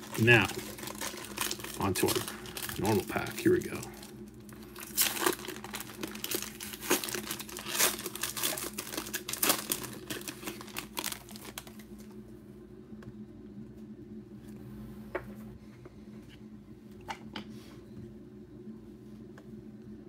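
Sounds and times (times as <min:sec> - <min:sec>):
foil wrapper tearing and crinkling: 0:00.0 - 0:12.1.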